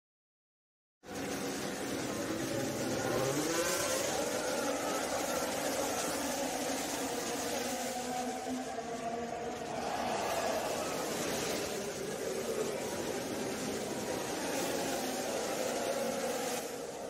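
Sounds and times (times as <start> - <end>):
racing cars accelerating: 1.1 - 17.0.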